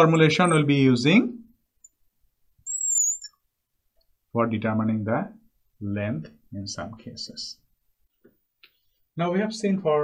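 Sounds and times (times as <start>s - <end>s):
marker squeaking on glass: 0.0s - 0.8s, 2.6s - 3.4s.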